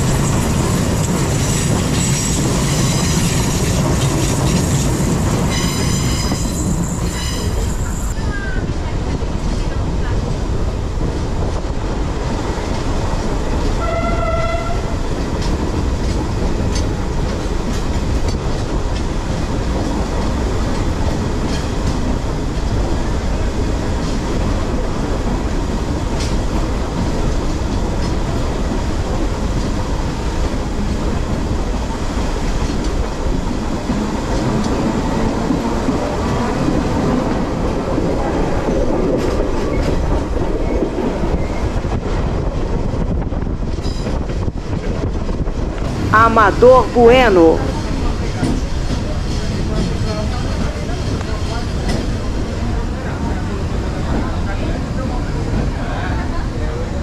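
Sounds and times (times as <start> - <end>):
rising train whine: 0.0 - 57.0
train wheels rumbling on rails: 0.0 - 57.0
train horn blast: 13.8 - 15.0.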